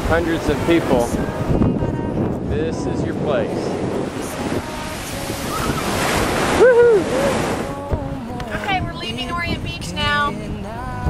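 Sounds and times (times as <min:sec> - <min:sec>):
surf washing up a sand beach: 0:00.0 - 0:08.8.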